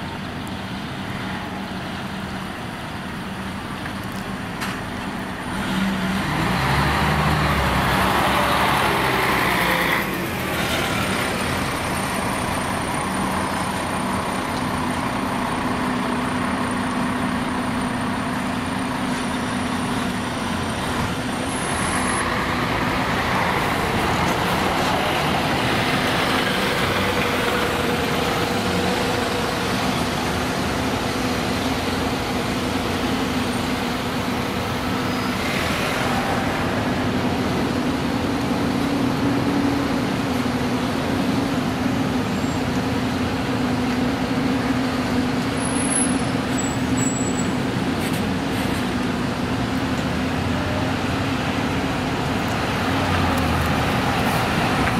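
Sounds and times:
diesel buses running: 0.0s - 54.9s.

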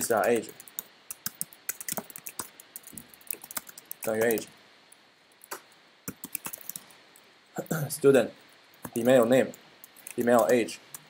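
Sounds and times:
computer keyboard typing: 0.0s - 4.5s, 5.5s - 6.9s, 8.7s - 11.0s.

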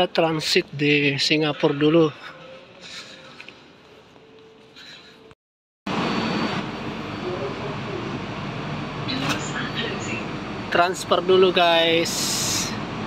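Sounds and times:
faint terminal hum: 0.0s - 13.0s
train car running noise: 5.9s - 13.0s.

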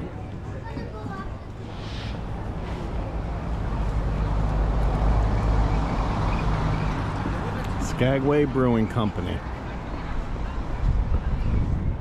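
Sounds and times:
bus engine driving past: 1.1s - 8.3s.

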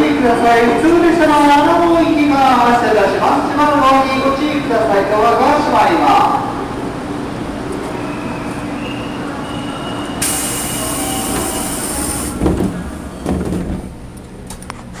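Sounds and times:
train equipment hum: 6.5s - 15.0s
compressed air hiss: 10.2s - 12.4s
sliding doors closing thuds: 11.2s - 14.0s.

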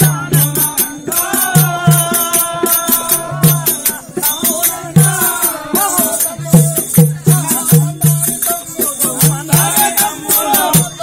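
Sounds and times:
barrel drum beat: 0.0s - 11.0s.

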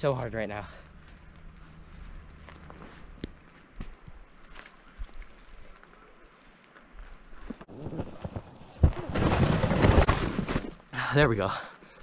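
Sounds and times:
faint wind: 0.0s - 12.0s
crunches in snow: 0.5s - 8.4s.

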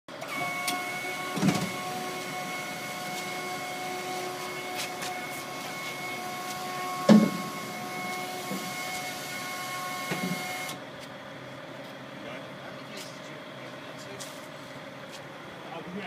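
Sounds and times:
hydraulic pump whining: 0.1s - 11.2s.

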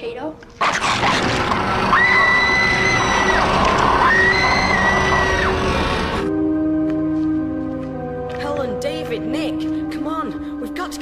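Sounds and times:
loud harsh noise: 0.6s - 6.3s
girl screaming: 1.9s - 6.0s.

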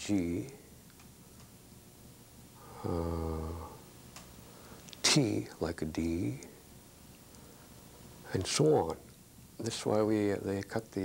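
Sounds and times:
man saying uhh: 2.6s - 3.8s.

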